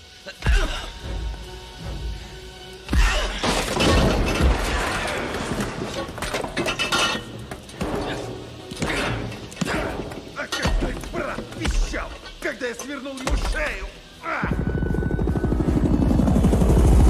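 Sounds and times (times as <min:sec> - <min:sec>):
film soundtrack music: 0:00.0 - 0:17.0
something shattering: 0:02.9 - 0:11.0.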